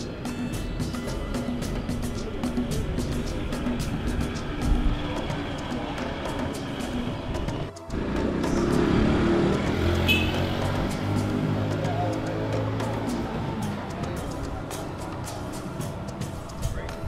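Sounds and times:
background music with light beat: 0.0s - 17.0s.

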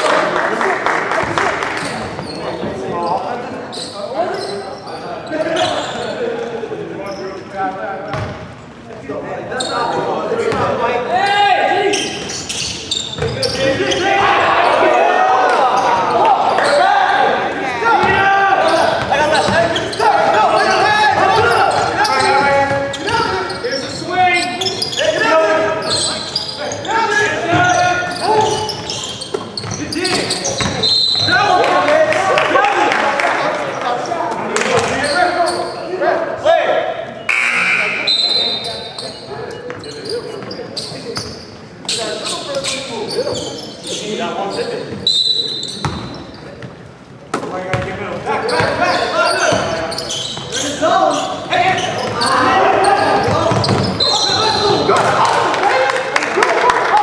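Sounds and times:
basketball bouncing on wooden court: 13.1s - 13.6s, 29.4s - 30.8s, 45.8s - 46.1s, 53.2s - 54.0s.

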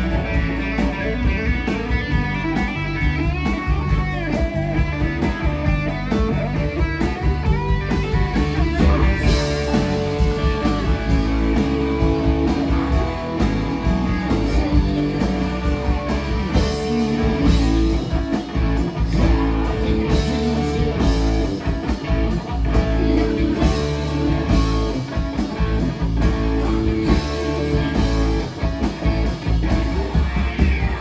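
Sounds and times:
electric guitar: 0.0s - 31.0s
keyboard: 0.0s - 31.0s
steady drum beat: 0.0s - 31.0s.

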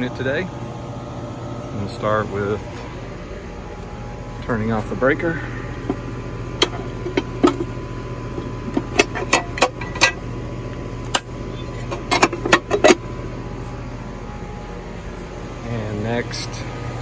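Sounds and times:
steady low hum: 0.0s - 17.0s
metal cover clicking and clacking: 6.6s - 7.7s, 8.7s - 10.2s, 11.1s - 13.0s.

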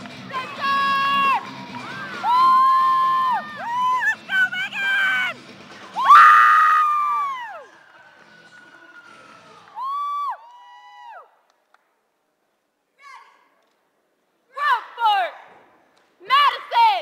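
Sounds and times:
spectators cheering: 0.0s - 11.4s.

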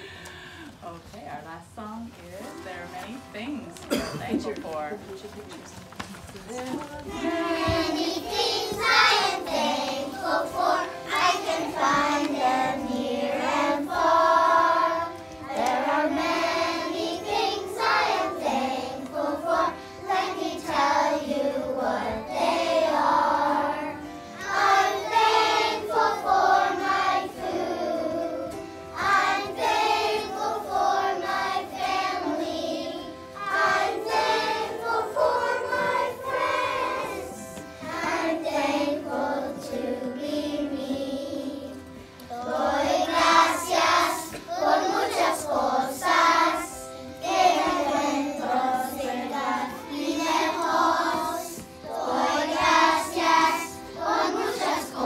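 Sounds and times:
children singing: 7.0s - 55.0s.

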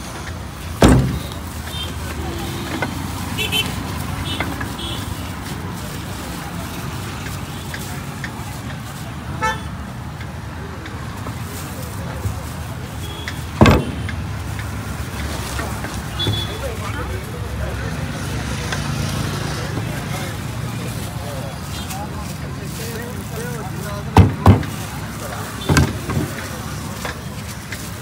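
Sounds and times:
road traffic hum: 0.0s - 28.0s
sharp knocks: 0.8s - 1.4s, 13.6s - 14.2s
chatter of voices: 15.0s - 28.0s.

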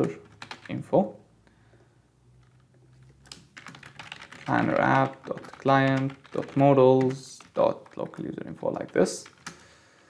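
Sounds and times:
typing on computer keyboard: 0.0s - 0.8s, 2.4s - 9.7s.

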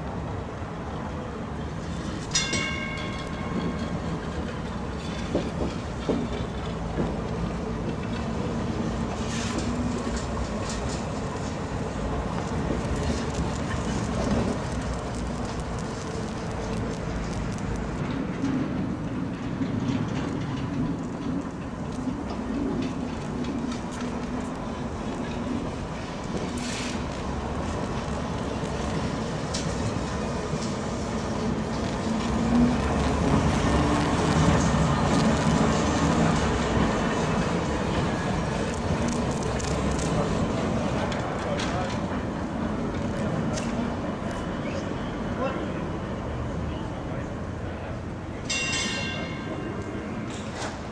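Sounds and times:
low hum of tram: 0.0s - 50.9s
tram wheels rumbling on rails: 0.0s - 50.9s.

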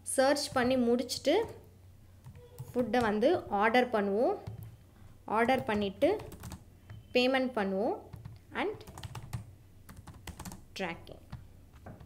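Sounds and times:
typing on computer keyboard: 4.4s - 4.8s, 5.5s - 7.0s, 8.1s - 10.6s.

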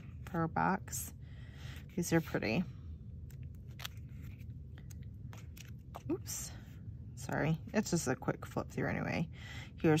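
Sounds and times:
sticker sheets flipping: 3.2s - 6.3s
paper rustling: 3.3s - 6.2s.

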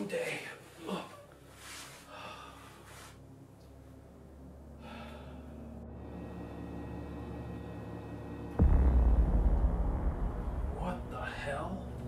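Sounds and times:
low ominous drone: 2.1s - 12.0s
deep bass boom: 8.5s - 12.0s.

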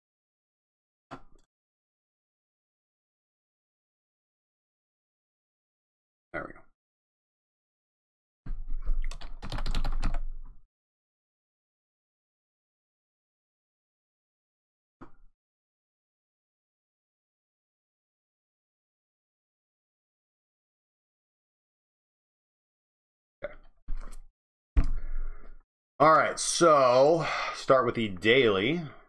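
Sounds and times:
fast typing on computer keyboard: 8.8s - 10.4s.

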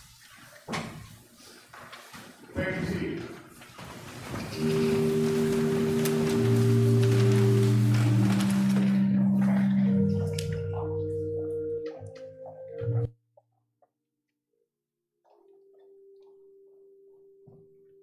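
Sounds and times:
congregation moving: 0.5s - 13.1s
low voices: 4.3s - 13.1s
church organ chords: 4.5s - 13.1s.

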